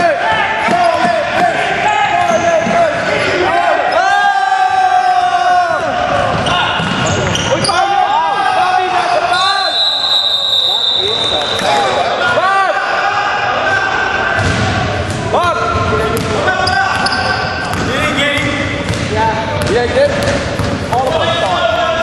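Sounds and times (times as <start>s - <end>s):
players' voices: 0.0s - 22.0s
shoe squeaks: 6.4s - 7.9s, 16.6s - 17.8s.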